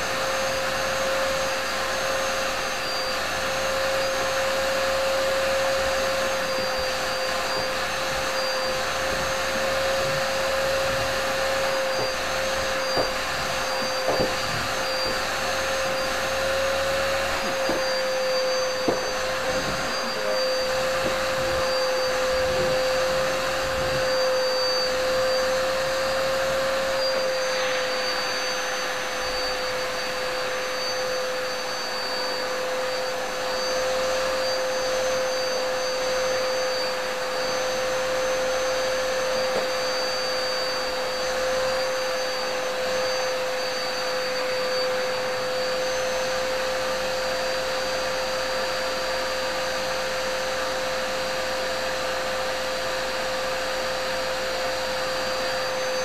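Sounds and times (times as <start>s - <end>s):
vacuum cleaner running: 0.0s - 56.0s.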